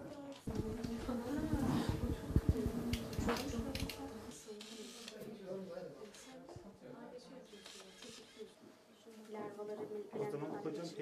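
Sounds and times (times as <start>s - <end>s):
indistinct voices in a room: 0.0s - 11.0s.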